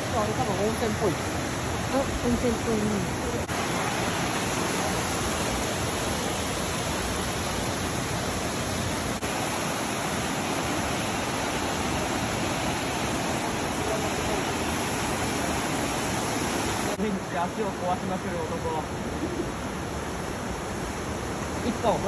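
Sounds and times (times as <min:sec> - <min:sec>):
stream rushing over boulders: 0:00.0 - 0:22.0.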